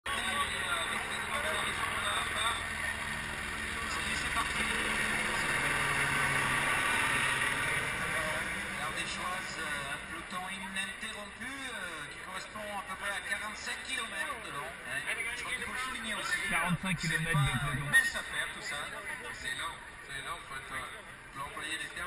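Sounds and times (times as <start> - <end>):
helicopter flying overhead: 0.9 - 10.1
crowd chatter: 16.5 - 18.1.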